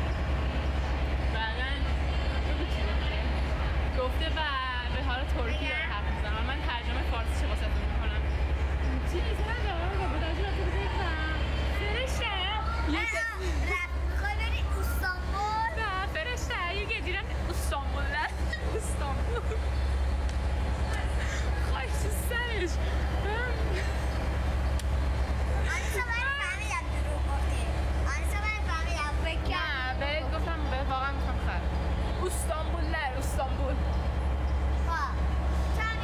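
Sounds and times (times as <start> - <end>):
steady low rumble: 0.0 - 36.0
girl talking: 12.7 - 15.8, 25.7 - 29.2, 34.9 - 36.0.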